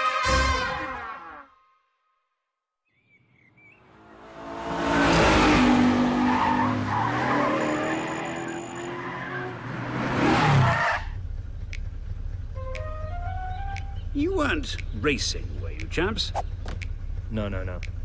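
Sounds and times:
sports car engines revving: 3.9 - 18.0.

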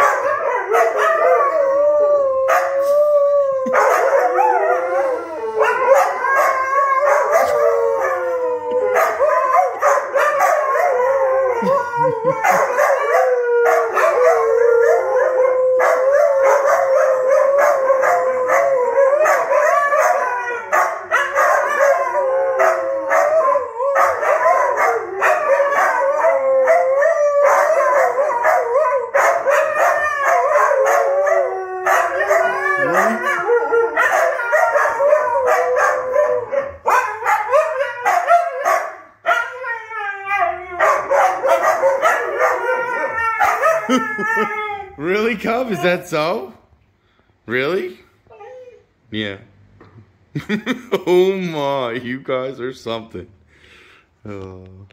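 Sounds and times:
dogs howling: 0.0 - 46.4.

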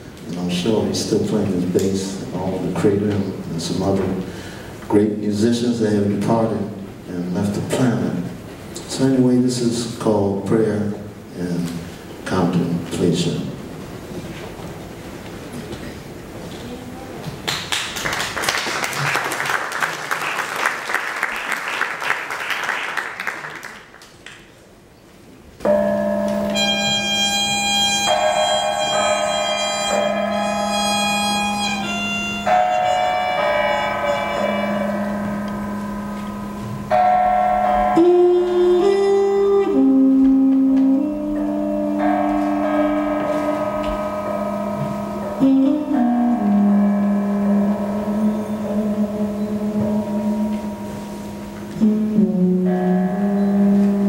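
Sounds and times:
steady low drone: 26.2 - 37.0, 40.9 - 54.0
horn playing long notes: 26.3 - 54.0
shimmering wash of noise: 32.2 - 38.0, 46.3 - 51.8.

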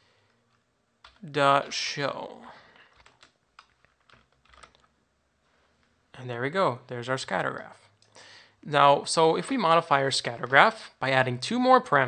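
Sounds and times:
keyboard typing: 0.5 - 1.8, 2.7 - 4.9.

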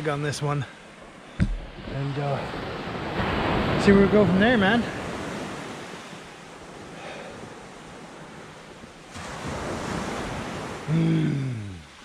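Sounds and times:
waves washing on shingle beach: 0.0 - 12.0.

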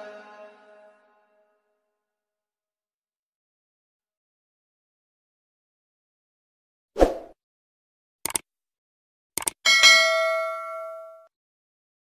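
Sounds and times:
bright bell chime: 9.7 - 11.3.

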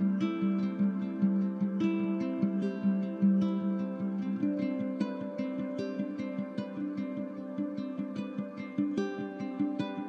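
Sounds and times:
plucked string new-age music: 0.0 - 10.0.

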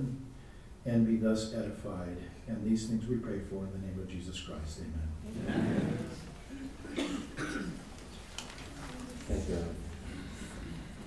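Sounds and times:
faint room voices: 0.0 - 11.0
person coughing: 6.8 - 7.8.

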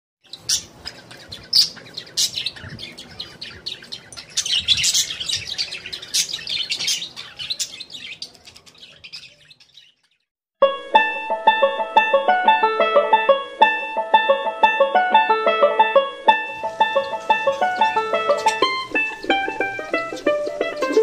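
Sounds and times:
small birds chirping: 0.2 - 10.3, 16.4 - 21.0.

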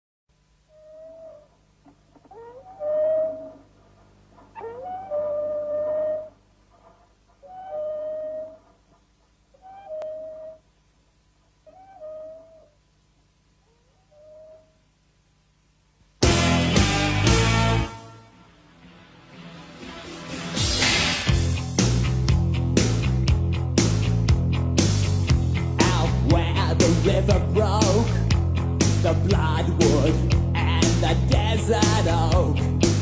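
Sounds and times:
animal howling: 0.7 - 1.5, 2.2 - 3.7, 4.5 - 6.4, 7.4 - 8.7, 9.6 - 10.6, 11.7 - 12.8.

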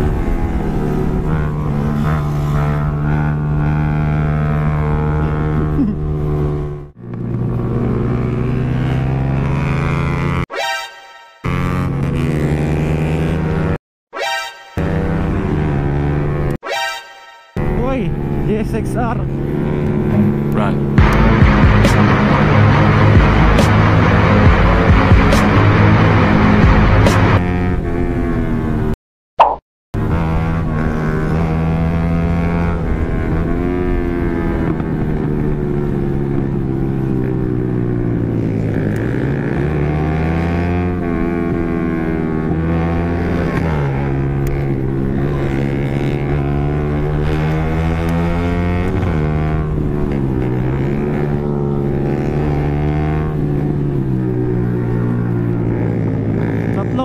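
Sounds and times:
motorcycle engine revving high: 0.0 - 29.0, 30.0 - 57.0.

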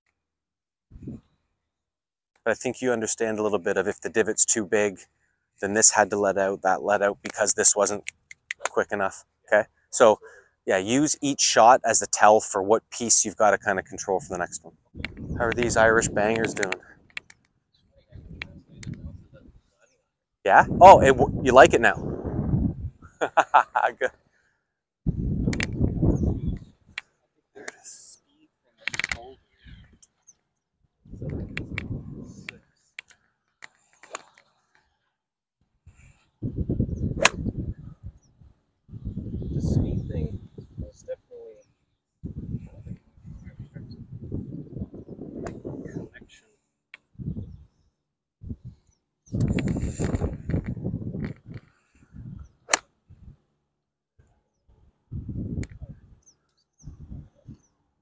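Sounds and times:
wind buffeting microphone: 0.9 - 1.2, 14.9 - 17.1, 18.0 - 19.6, 20.6 - 23.2, 25.1 - 27.0, 31.0 - 32.6, 36.4 - 41.2, 42.2 - 46.3, 47.1 - 47.7, 48.4 - 53.4, 55.1 - 56.2, 56.8 - 57.7
golf club striking balls: 37.2 - 37.5.

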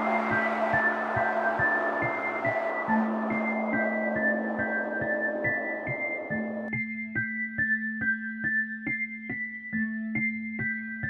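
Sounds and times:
short high notes: 0.0 - 6.7
held low note: 0.0 - 6.8
steady low pulse: 0.0 - 7.0.

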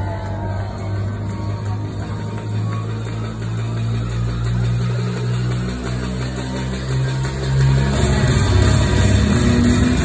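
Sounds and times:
deep bass synth drone: 0.0 - 10.0.

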